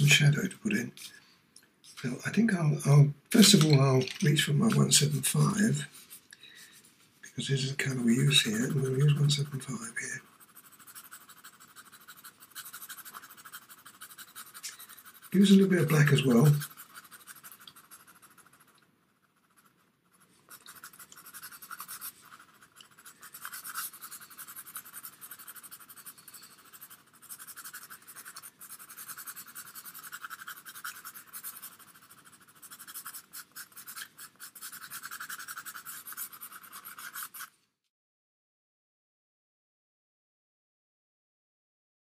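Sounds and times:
pastel pencil scratching on paper: 3.4s - 37.5s.

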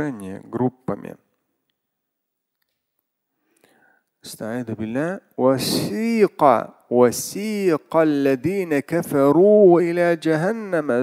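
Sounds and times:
man's voice: 0.0s - 1.2s, 4.2s - 11.0s.

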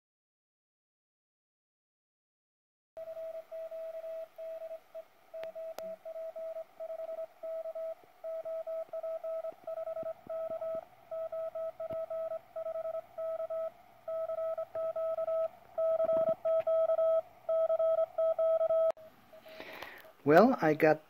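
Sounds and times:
morse code tone: 3.0s - 19.0s.

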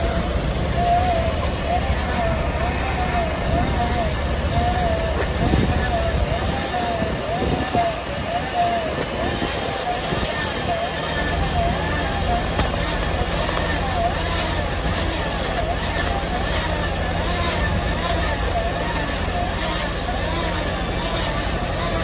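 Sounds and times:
rising and falling whine: 0.0s - 22.0s
tractor engine running: 0.0s - 22.0s.

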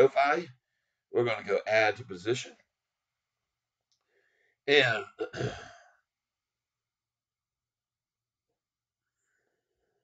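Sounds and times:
man clearing his throat: 4.9s - 6.0s.

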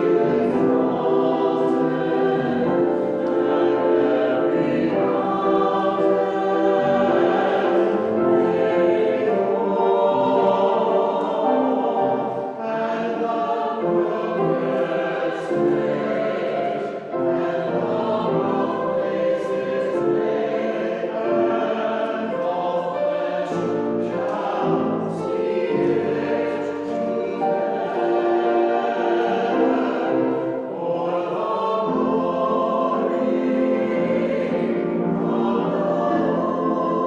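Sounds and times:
church choir singing: 0.0s - 37.0s.

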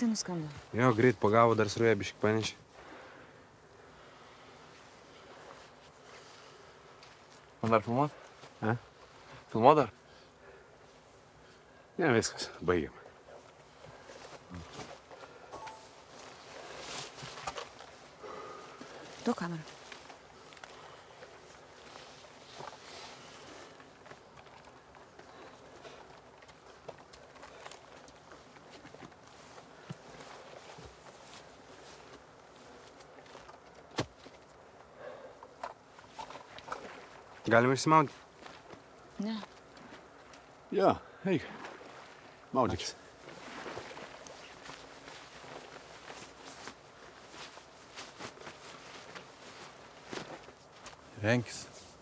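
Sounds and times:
faint woodland ambience: 0.0s - 52.0s
soft rustles: 13.3s - 34.9s, 43.1s - 52.0s
feet shifting in leafy undergrowth: 13.7s - 34.8s, 42.9s - 52.0s.

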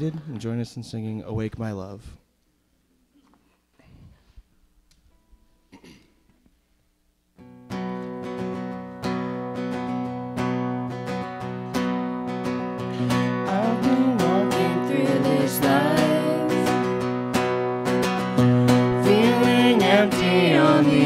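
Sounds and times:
acoustic guitars strumming chords: 7.4s - 21.0s
voices singing: 13.2s - 17.0s, 18.4s - 21.0s.

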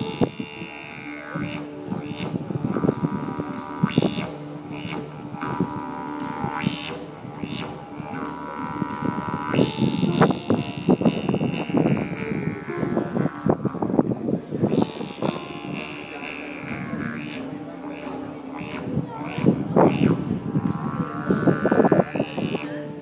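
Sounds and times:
didgeridoo drone: 0.0s - 23.0s.

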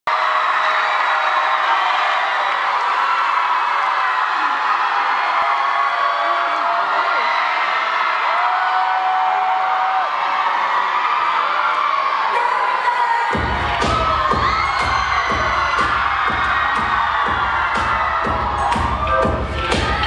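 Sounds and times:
audience cheering and whooping: 0.1s - 20.0s.

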